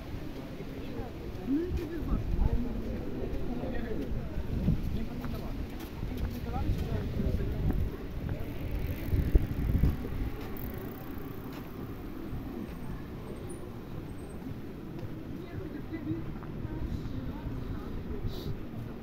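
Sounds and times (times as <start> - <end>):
voices of people walking past: 0.0 - 19.0
wind rumble: 1.2 - 19.0.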